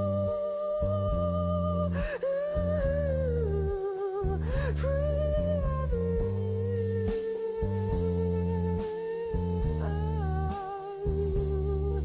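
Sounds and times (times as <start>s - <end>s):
slow sliding melody over bass: 0.0s - 12.0s.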